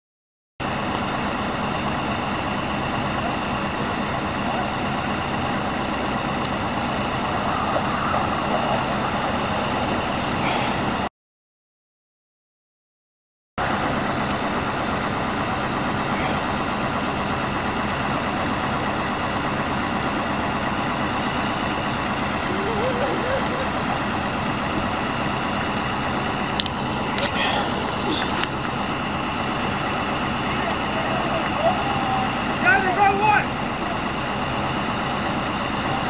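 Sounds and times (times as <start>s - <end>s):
fire truck engine running: 0.6s - 11.1s, 13.6s - 36.0s
faint voices: 22.4s - 24.0s, 30.4s - 34.2s.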